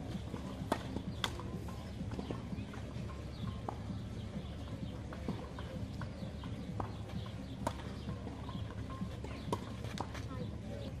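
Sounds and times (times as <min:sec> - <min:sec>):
tennis ball bouncing: 0:00.0 - 0:10.3
tennis ball hitting strings: 0:00.3 - 0:03.8, 0:05.1 - 0:10.2.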